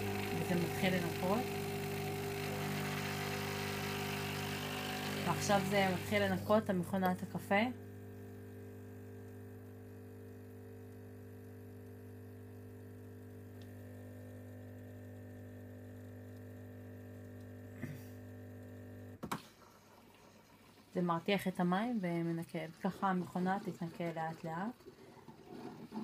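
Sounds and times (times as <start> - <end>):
espresso machine pump humming: 0.0 - 19.2, 19.8 - 26.0.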